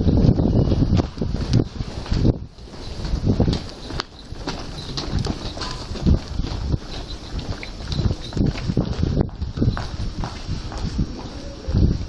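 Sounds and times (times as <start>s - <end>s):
footsteps going down stairs: 0.0s - 12.0s
footsteps on tiled floor: 0.0s - 12.0s.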